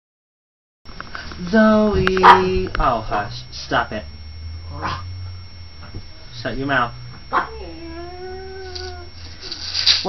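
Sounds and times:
steady low hum: 0.9 - 10.0
dog vocalising: 4.7 - 5.0, 7.3 - 8.2.

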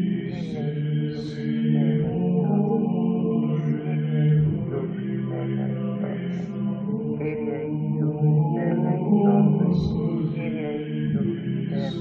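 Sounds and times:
low-pitched chanting voices: 0.0 - 12.0.

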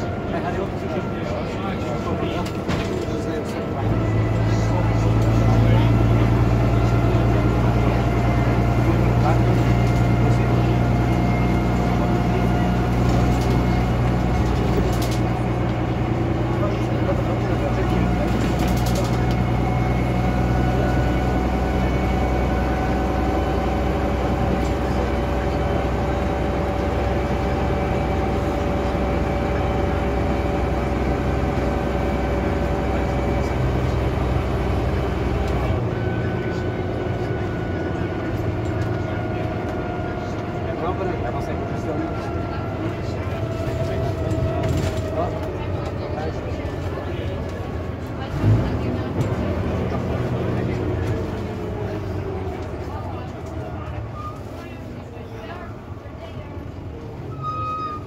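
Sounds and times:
bus diesel engine drone: 0.0 - 58.0.

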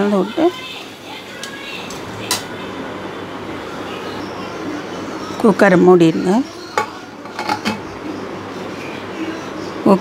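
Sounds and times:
steady background noise: 0.0 - 10.0.

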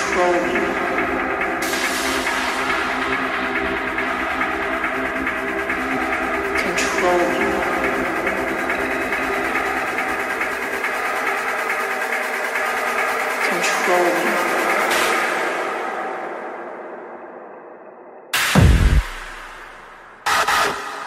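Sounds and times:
hard techno track: 0.0 - 17.0, 18.4 - 21.0.

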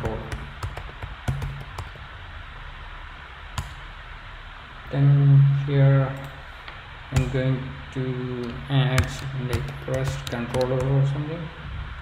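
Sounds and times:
computer keyboard keystrokes: 0.0 - 2.0, 8.4 - 11.0
steady low hum: 0.0 - 12.0.

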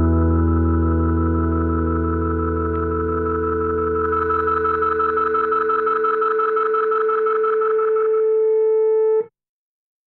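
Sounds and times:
sustained final chord: 0.0 - 5.9.

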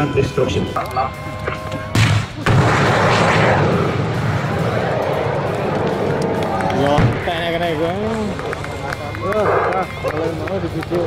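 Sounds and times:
missile launch blast: 2.0 - 5.2
rocket motor roaring: 2.4 - 7.4.

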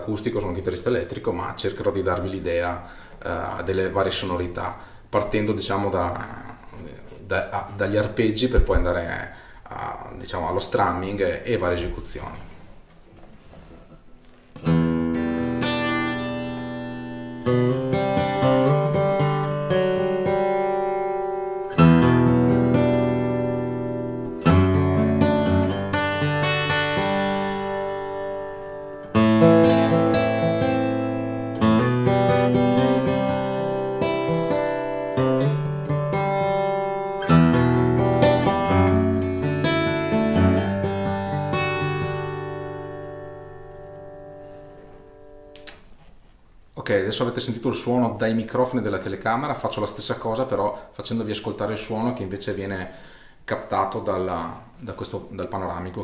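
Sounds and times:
acoustic guitar arpeggiated chords: 14.6 - 45.6.

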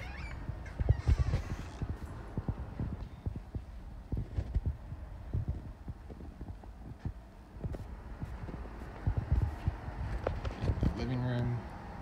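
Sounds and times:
footsteps on hardwood floor: 0.0 - 10.8.

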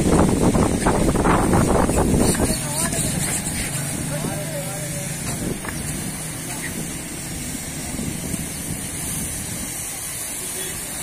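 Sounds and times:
engine hum and hiss: 0.0 - 11.0
background voices: 2.1 - 11.0.

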